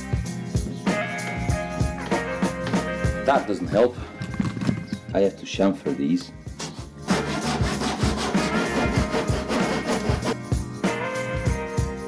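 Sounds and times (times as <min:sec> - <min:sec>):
background music: 0:00.0 - 0:12.0
hand tool chamfering plywood: 0:06.6 - 0:10.4.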